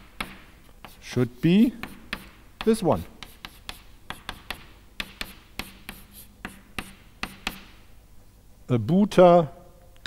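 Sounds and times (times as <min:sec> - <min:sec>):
chalk tapping and scratching: 0:00.0 - 0:07.8.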